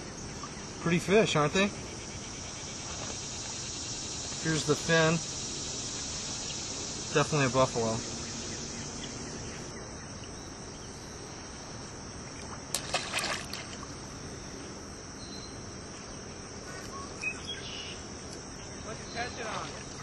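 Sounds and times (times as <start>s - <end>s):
insects droning: 0.0s - 20.0s.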